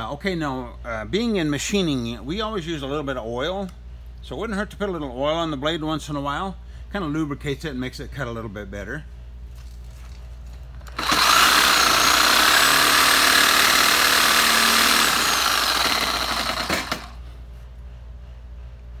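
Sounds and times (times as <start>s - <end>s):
reciprocating saw cutting metal: 10.9s - 17.2s.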